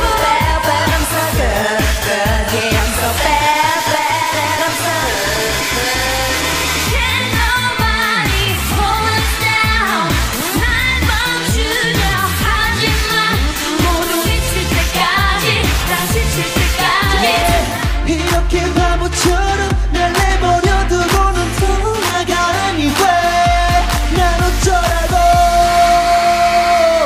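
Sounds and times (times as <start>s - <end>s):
pop song with sung vocal: 0.0s - 27.0s.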